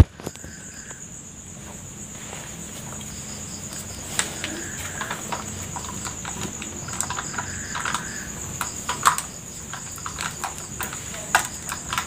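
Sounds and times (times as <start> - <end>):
insect chirring: 0.0 - 12.0.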